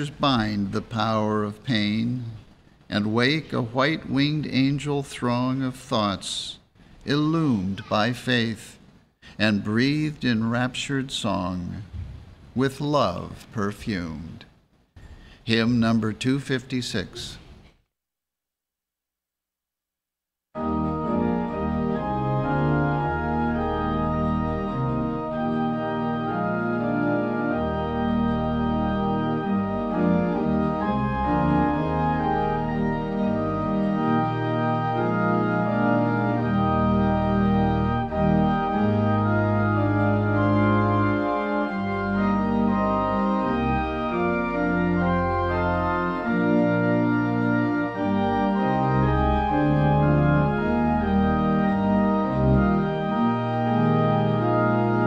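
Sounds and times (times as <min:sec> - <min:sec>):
organ playing hymn chords: 0:00.0 - 0:14.4, 0:20.6 - 0:55.0.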